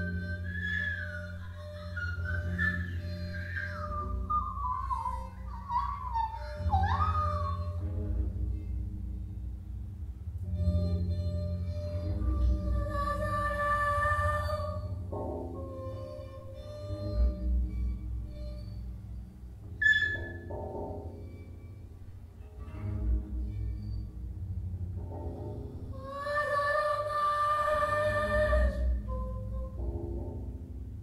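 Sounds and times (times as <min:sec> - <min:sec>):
wavering high tone: 0:00.0 - 0:07.8, 0:17.8 - 0:20.5.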